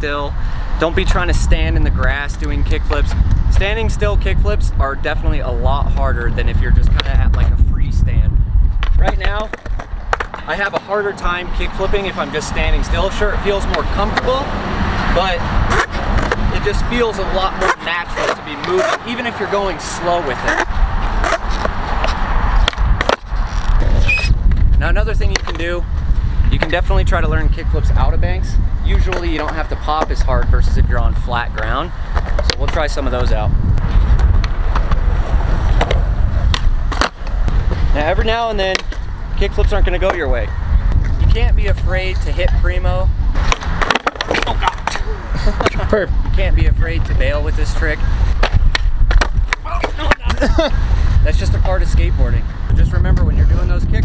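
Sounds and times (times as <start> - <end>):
man speaking: 0.0 - 8.3, 9.0 - 9.5, 10.4 - 14.5, 16.5 - 20.6, 49.6 - 54.0
skateboard wheels rolling on concrete: 0.0 - 54.0
skateboard clacking: 8.8 - 11.2, 38.7 - 39.0, 43.4 - 45.8, 48.4 - 50.4.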